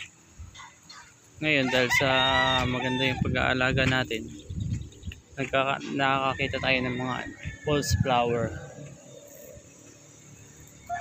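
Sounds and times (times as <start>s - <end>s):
rooster crowing: 0.6s - 3.4s, 5.8s - 9.2s, 10.8s - 11.0s.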